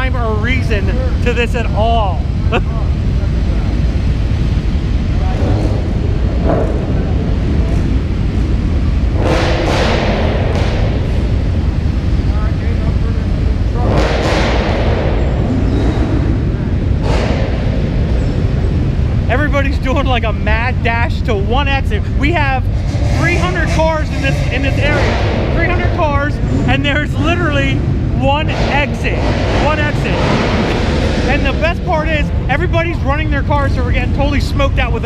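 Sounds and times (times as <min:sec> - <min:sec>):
many vehicle engines rumbling: 0:00.0 - 0:35.0.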